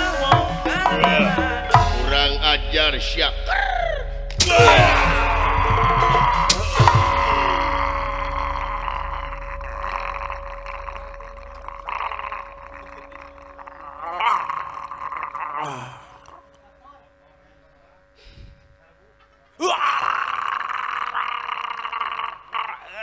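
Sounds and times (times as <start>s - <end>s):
gamelan music: 0.0s - 15.2s
long wavering high tone: 0.0s - 19.5s
sharp knocks: 4.3s - 7.3s.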